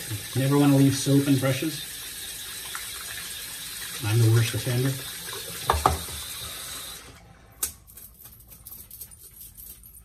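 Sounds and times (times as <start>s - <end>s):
water running into a sink: 0.0s - 7.1s.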